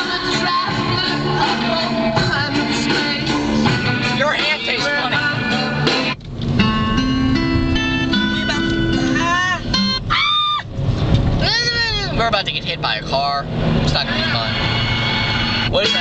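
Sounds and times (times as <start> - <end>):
car road rumble: 0.0 - 16.0
music from car stereo: 0.0 - 16.0.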